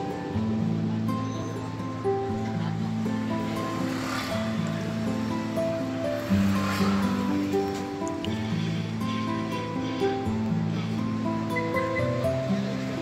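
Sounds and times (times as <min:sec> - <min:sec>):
washes of noise: 0:02.8 - 0:11.5.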